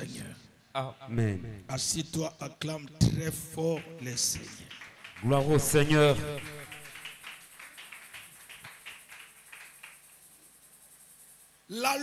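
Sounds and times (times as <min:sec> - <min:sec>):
congregation clapping: 0:03.2 - 0:10.7.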